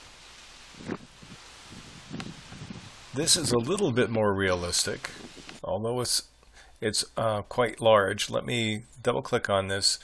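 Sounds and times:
wind-like outdoor hiss: 0:00.0 - 0:10.0.

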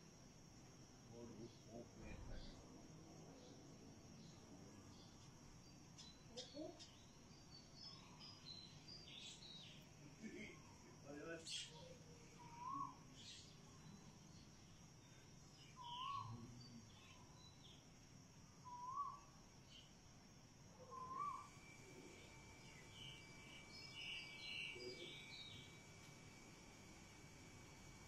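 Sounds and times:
bird calling faintly: 0:11.4 - 0:14.2, 0:15.1 - 0:17.8, 0:18.6 - 0:19.9, 0:20.8 - 0:25.9.

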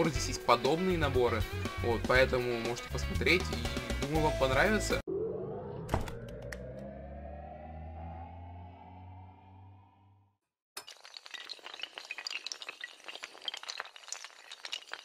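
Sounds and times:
rising tone over low hum: 0:05.0 - 0:10.4
small hard pieces clattering: 0:10.8 - 0:15.0.

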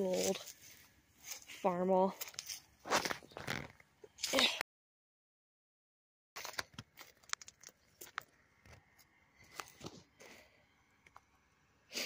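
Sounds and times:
footsteps in dry grass and leaves: 0:00.0 - 0:03.7.

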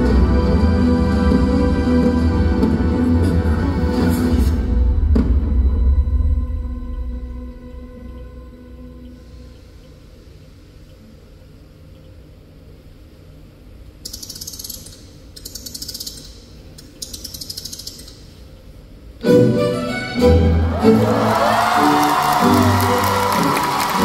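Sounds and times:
dark soundtrack music: 0:00.0 - 0:11.1
low rumble: 0:04.0 - 0:10.7.

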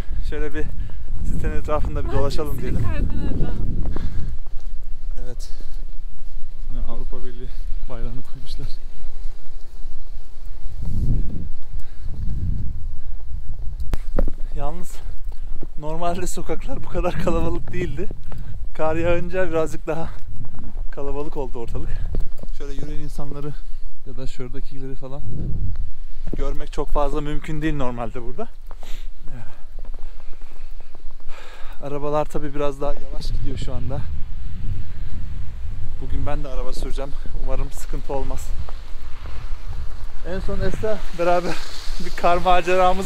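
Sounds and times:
footsteps on snow: 0:00.0 - 0:43.0
wind rumbling on microphone: 0:00.0 - 0:43.0.

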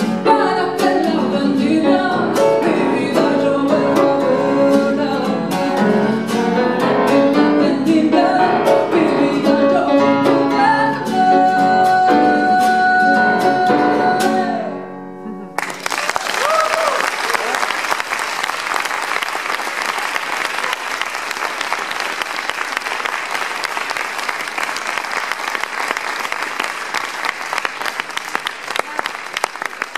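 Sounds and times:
nylon-string guitar: 0:00.0 - 0:15.7
grand piano: 0:00.0 - 0:15.9
audience applause: 0:15.6 - 0:29.9.

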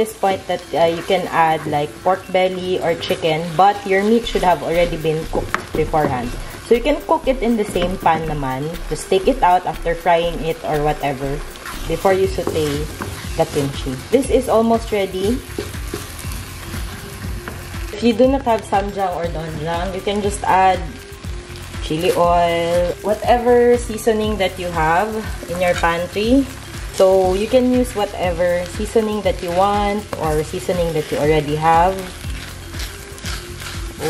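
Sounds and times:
soft background music: 0:00.0 - 0:34.0
vegetables sizzling in a pan: 0:00.0 - 0:34.0
spatula scraping frying pan: 0:10.4 - 0:17.9, 0:29.4 - 0:34.0.

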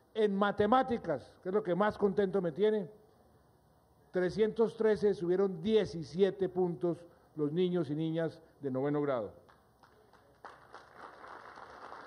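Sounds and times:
audience applauding: 0:09.5 - 0:12.0.

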